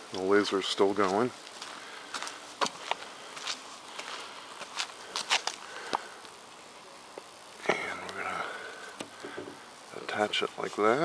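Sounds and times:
footsteps on concrete: 0:01.0 - 0:06.0
camera handling knocks: 0:09.2 - 0:09.6.

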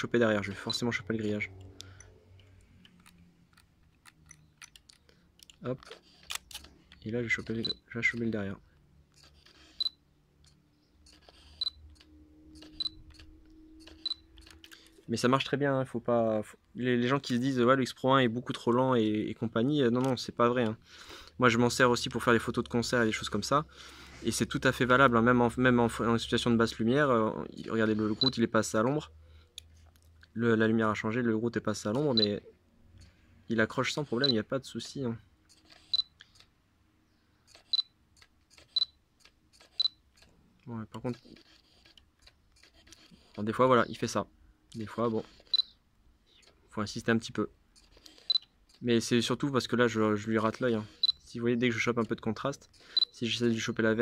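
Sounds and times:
camera focus motor whirring: 0:05.9 - 0:06.8, 0:09.1 - 0:15.0, 0:33.8 - 0:34.4, 0:38.5 - 0:40.3, 0:41.2 - 0:43.7, 0:44.9 - 0:45.8, 0:47.7 - 0:48.8.

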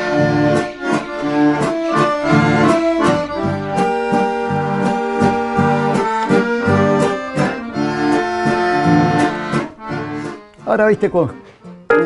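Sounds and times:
accordion music: 0:00.0 - 0:12.0.

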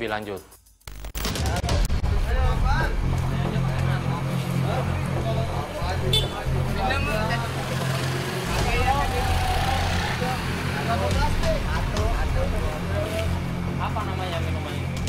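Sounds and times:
people talking: 0:01.4 - 0:07.8, 0:08.4 - 0:14.9.

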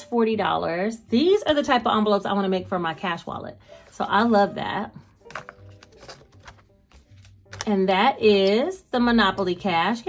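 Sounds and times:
faint background music: 0:00.0 - 0:10.0
paper envelope rustling: 0:05.0 - 0:07.7.

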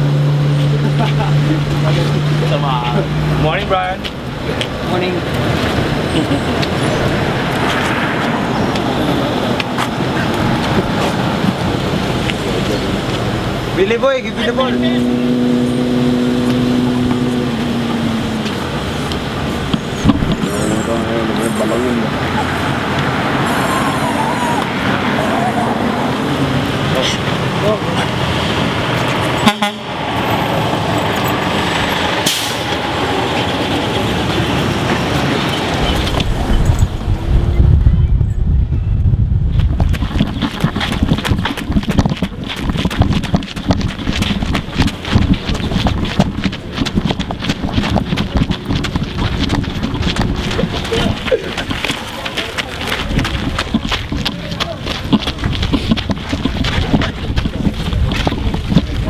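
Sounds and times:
group of people chattering: 0:00.8 - 0:28.3, 0:47.9 - 0:59.0
running footsteps: 0:04.0 - 0:13.8, 0:15.2 - 0:24.8, 0:39.5 - 0:59.0
wind on microphone: 0:04.0 - 0:13.8, 0:14.8 - 0:27.6, 0:29.9 - 0:59.0.

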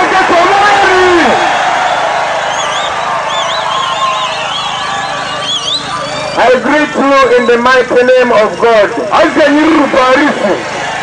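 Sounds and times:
crowd cheering and calling: 0:00.0 - 0:11.0
high warbling whistles: 0:02.4 - 0:06.6.

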